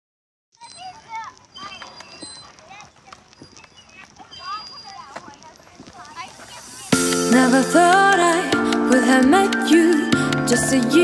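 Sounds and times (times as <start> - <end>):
distant voices: 0.6 - 8.5.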